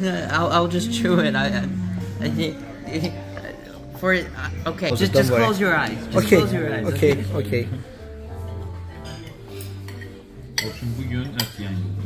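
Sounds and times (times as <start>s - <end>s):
background music held notes: 0.0s - 12.0s
cutlery clinking on plate: 9.0s - 11.7s.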